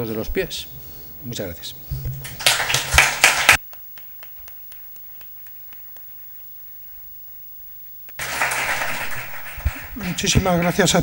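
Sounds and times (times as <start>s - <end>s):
audience applause: 2.2s - 6.4s, 8.2s - 11.0s.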